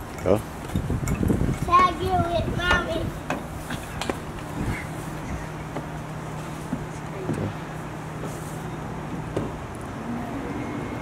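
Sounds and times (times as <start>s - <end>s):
road traffic noise: 0.0s - 11.0s
vehicle engine hum: 0.0s - 11.0s.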